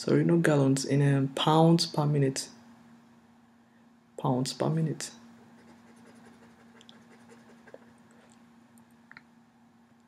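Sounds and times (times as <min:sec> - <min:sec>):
steady low hum: 0:00.0 - 0:10.0
pen scratching on paper: 0:05.6 - 0:07.8.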